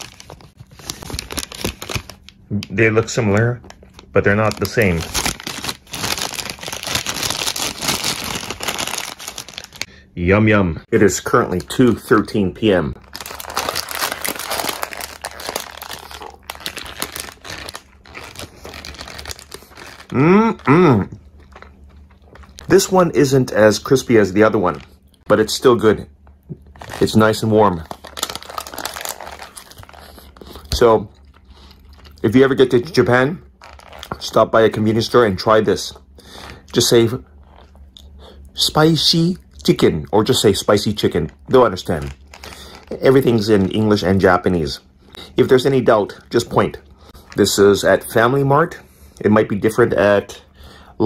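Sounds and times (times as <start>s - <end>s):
paper crinkling and rustling: 0.0s - 9.9s, 13.0s - 20.2s, 26.7s - 30.8s, 33.6s - 34.3s.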